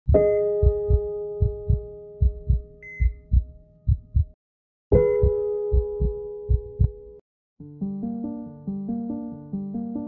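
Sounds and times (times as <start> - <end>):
heartbeat thumps: 0.1 - 7.0.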